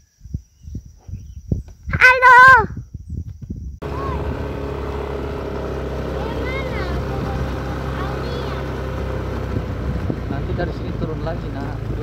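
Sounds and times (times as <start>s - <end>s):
motorcycle engine running: 3.8s - 12.0s.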